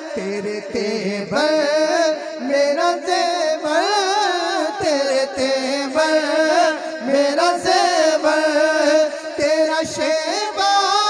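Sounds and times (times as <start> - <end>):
man singing devotional chant: 0.0 - 11.0.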